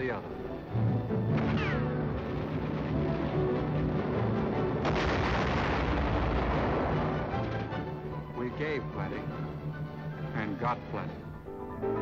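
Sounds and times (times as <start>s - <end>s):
film score music: 0.0s - 12.0s
shell explosion: 1.3s - 7.6s.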